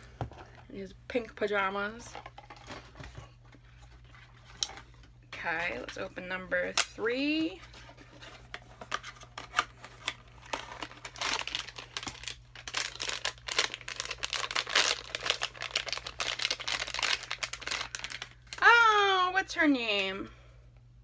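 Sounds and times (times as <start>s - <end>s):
packaging tearing and crinkling: 8.9s - 18.6s.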